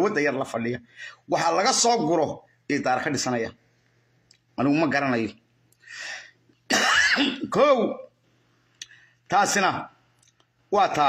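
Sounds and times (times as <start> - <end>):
short breath in: 5.8 - 6.4
man clearing his throat: 6.7 - 7.6.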